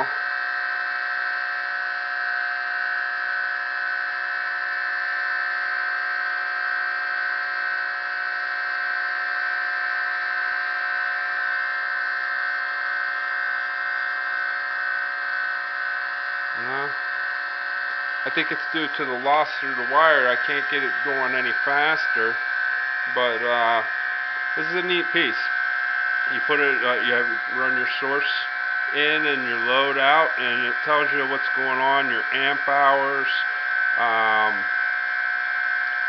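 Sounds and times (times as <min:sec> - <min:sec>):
motor high-pitched whine: 0:00.0 - 0:36.0.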